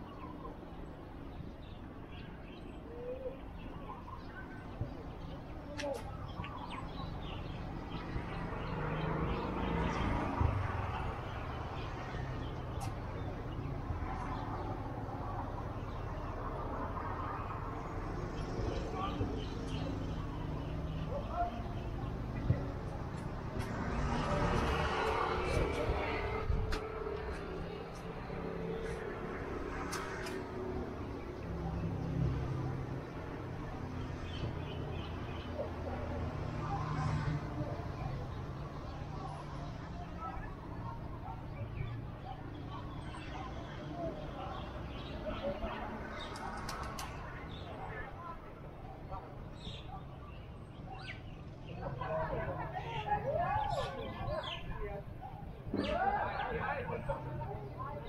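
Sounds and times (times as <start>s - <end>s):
birds chirping: 0.0s - 58.0s
road vehicle passing: 6.3s - 58.0s.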